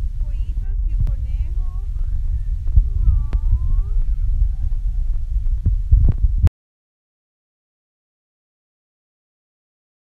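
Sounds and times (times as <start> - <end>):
low rumbling and thumping: 0.0 - 6.5.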